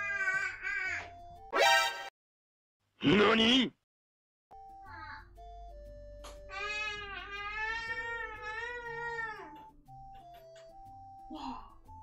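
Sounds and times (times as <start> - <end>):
soft background music: 4.6 - 12.0
baby crying: 6.5 - 9.6.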